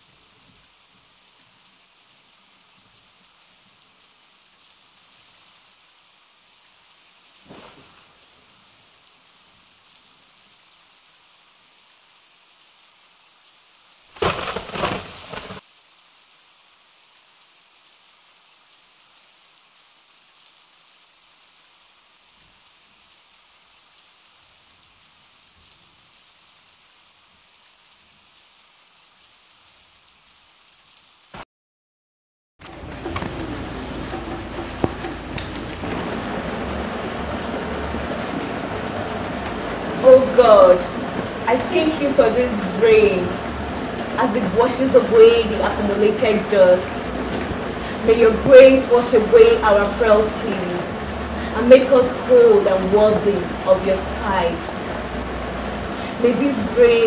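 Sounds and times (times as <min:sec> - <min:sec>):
rain hissing: 0:00.0 - 0:31.4, 0:32.6 - 0:57.0
thunder crack: 0:14.2 - 0:15.6, 0:32.7 - 0:55.2
faint rumble: 0:32.6 - 0:56.9.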